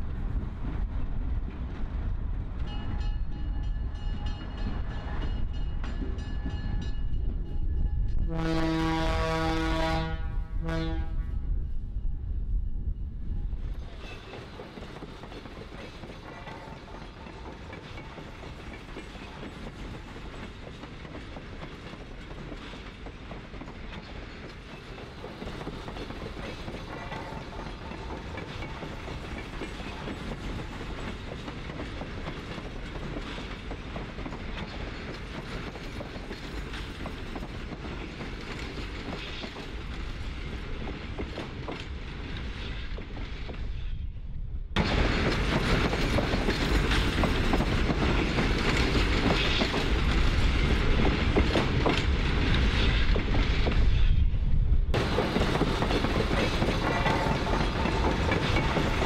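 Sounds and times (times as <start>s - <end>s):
train rumbling on rails: 0.0s - 59.0s
train wheel clicks: 14.0s - 43.7s, 44.8s - 53.8s, 55.0s - 59.0s.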